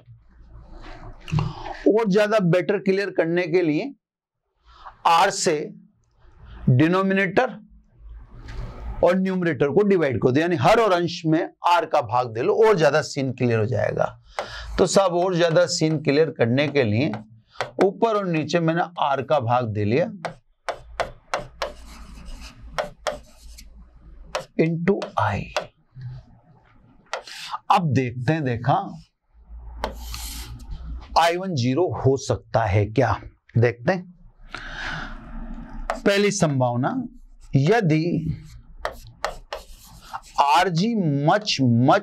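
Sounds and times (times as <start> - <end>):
chalk scratching on blackboard: 20.2 - 25.7, 29.8 - 30.8, 35.9 - 36.1, 37.1 - 40.7.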